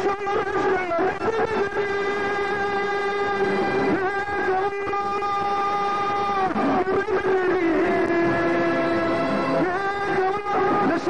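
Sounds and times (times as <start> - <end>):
man singing long note: 0.0 - 11.0.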